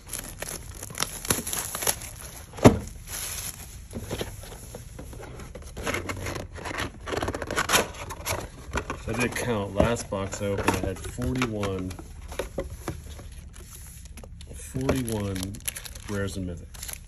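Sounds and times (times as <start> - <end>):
plastic wrapping crinkling: 0.0 - 4.8, 6.4 - 17.0.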